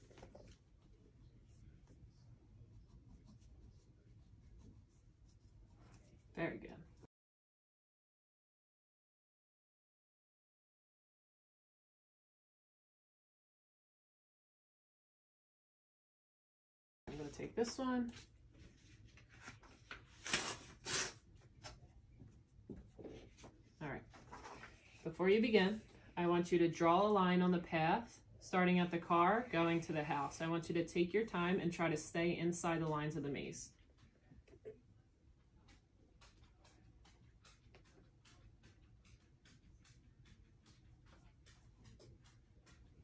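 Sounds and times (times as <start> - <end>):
pencil scratching on paper: 0.0 - 7.1
paper rustling: 18.1 - 21.9, 22.7 - 25.0.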